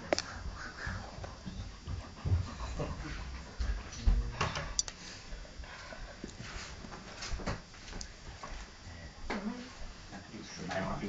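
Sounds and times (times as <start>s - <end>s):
dogs panting: 0.0s - 7.1s.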